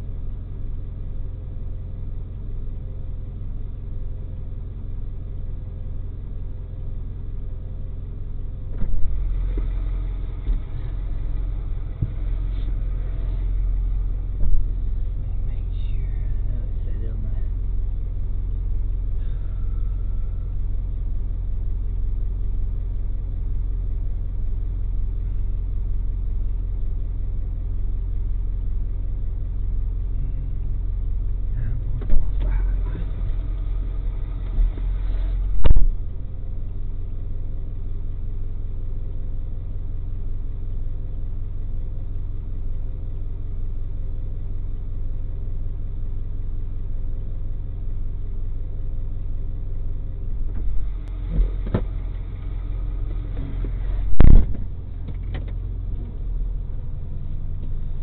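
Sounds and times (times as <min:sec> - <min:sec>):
truck engine idling: 0:00.0 - 0:58.0.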